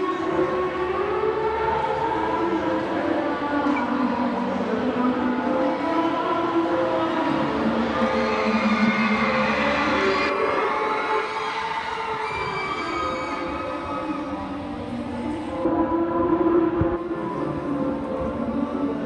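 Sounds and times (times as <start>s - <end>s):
sustained chord over loudspeakers: 0.0s - 19.0s.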